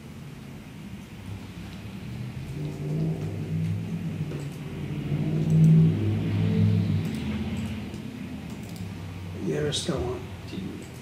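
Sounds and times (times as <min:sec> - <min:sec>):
low rumble: 0:00.8 - 0:09.4.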